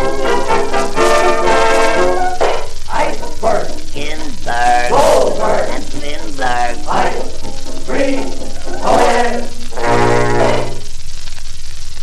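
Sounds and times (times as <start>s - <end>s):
dance band held chord: 0.0s - 10.9s
record surface hiss and crackle: 0.0s - 12.0s
faint record clicks: 2.4s - 12.0s.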